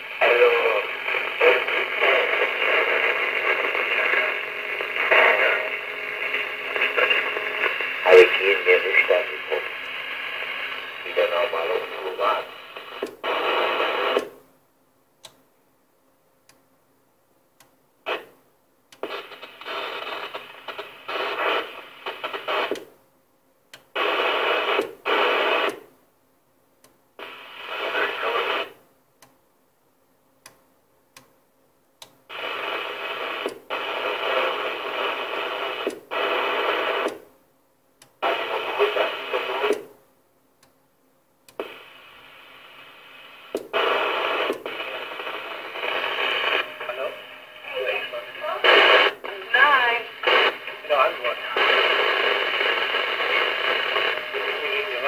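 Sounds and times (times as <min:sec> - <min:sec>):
garbled radio voices: 0:00.1 - 0:14.2, 0:27.2 - 0:28.7, 0:32.3 - 0:37.1, 0:38.2 - 0:39.8, 0:41.6 - 0:55.0.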